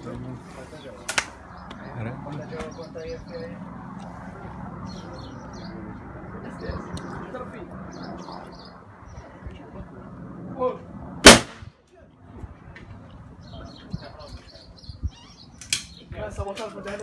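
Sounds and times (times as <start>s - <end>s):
shotgun shot with echo: 11.2s - 11.6s.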